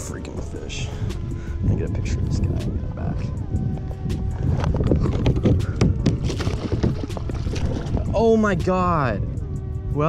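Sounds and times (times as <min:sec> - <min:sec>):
fish thrashing in a net: 0:06.1 - 0:08.1.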